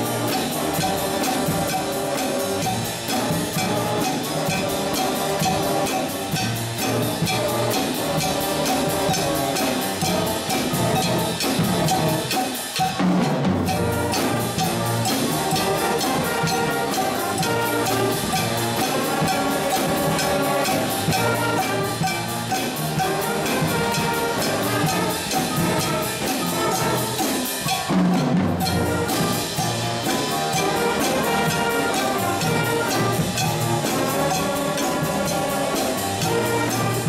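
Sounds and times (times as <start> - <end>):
concert band playing: 0.0 - 37.0
drum kit steady beat: 0.0 - 37.0.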